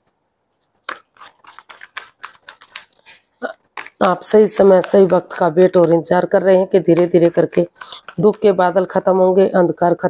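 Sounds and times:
cards rustling and clicking: 0.7 - 6.0.

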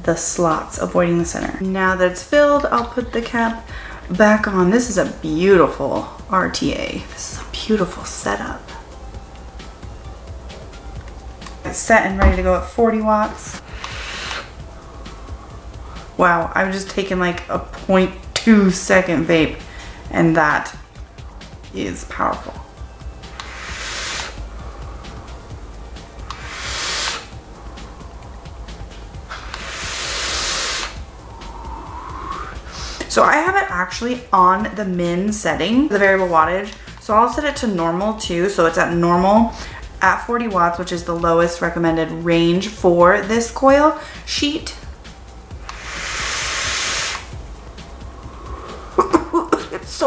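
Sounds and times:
vape draw hissing: 13.5 - 16.2, 22.6 - 33.2, 44.0 - 49.7
person exhaling vapor: 13.6 - 16.1, 23.3 - 25.3, 26.3 - 28.4, 29.3 - 33.1, 45.7 - 47.4, 48.0 - 49.3.

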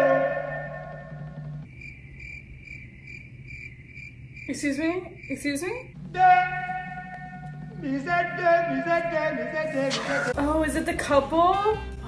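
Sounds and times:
crickets chirping: 0.5 - 9.7
held musical tone: 6.0 - 10.7.

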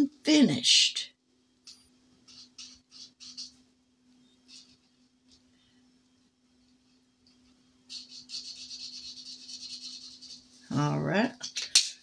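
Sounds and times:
faint low hum: 0.0 - 12.0
pen scratching on card: 2.3 - 3.6, 7.9 - 10.5.

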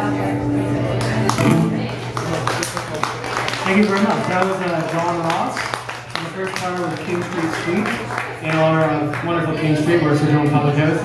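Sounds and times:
fingerstyle acoustic guitar: 1.1 - 2.0.

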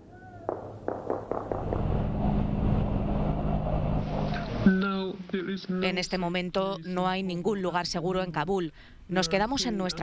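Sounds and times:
helicopter engines and rotors droning: 0.6 - 4.7.

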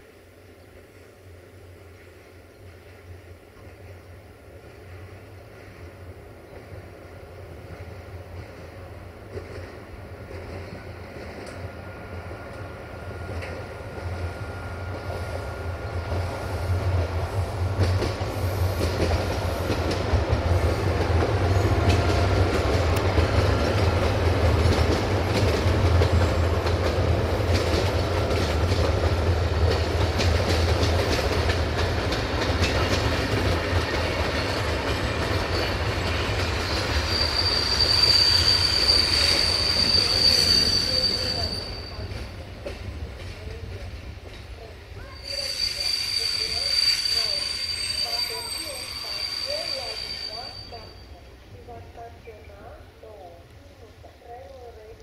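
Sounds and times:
train wheels rumbling on rails: 0.7 - 53.3
clacks at rail joints: 17.8 - 36.9, 42.1 - 44.6
high-pitched wheel squeal: 36.6 - 42.1, 45.0 - 51.1.

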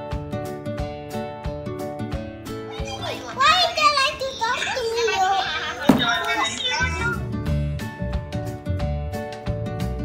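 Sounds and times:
young child chattering: 2.7 - 7.2.

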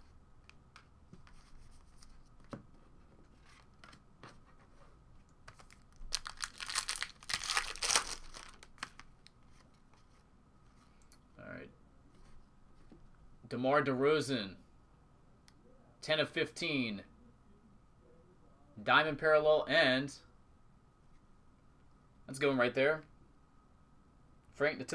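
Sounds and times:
foil wrapper ripping: 6.0 - 9.0.

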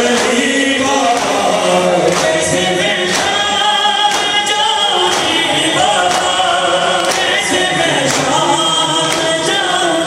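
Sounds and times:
crowd of men chanting: 0.0 - 10.0
singing over loudspeakers: 0.0 - 10.0
hands slapping chests: 0.1 - 0.4, 1.1 - 7.4, 8.1 - 8.4.

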